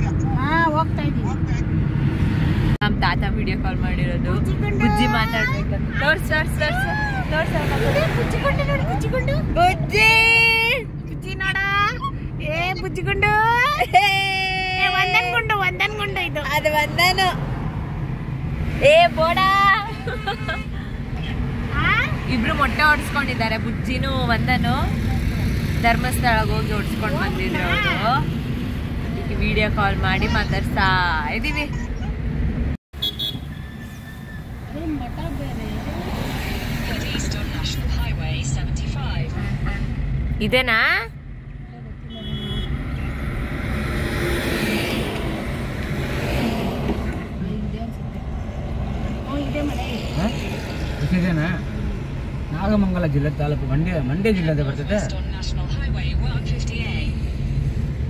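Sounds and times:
car cabin road and engine rumble: 0.0 - 33.4, 34.2 - 58.0
people talking: 2.8 - 17.4, 18.8 - 20.4, 25.8 - 28.3, 29.2 - 32.0, 36.9 - 39.3, 53.0 - 57.1.

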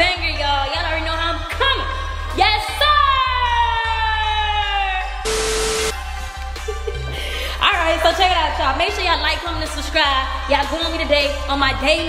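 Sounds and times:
background music with low bass: 0.0 - 12.0
static hiss with steady tone: 5.3 - 5.9.

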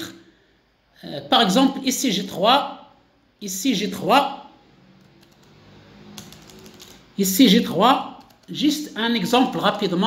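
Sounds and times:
faint keyboard keystrokes: 6.2 - 7.0.

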